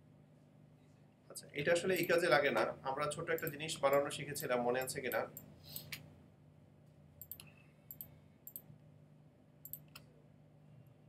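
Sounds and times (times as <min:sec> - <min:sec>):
low steady hum: 0:00.0 - 0:11.0
computer mouse clicks: 0:07.2 - 0:08.7, 0:09.6 - 0:10.1.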